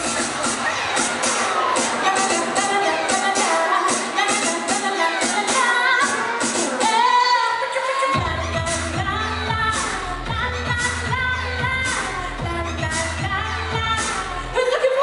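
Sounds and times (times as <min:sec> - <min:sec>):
amplified pop band: 0:00.0 - 0:15.0
woman singing into microphone: 0:01.8 - 0:15.0
deep bass line: 0:08.2 - 0:14.6.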